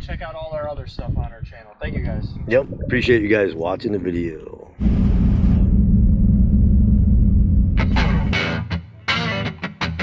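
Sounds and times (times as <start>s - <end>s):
guitar music: 7.8s - 10.0s.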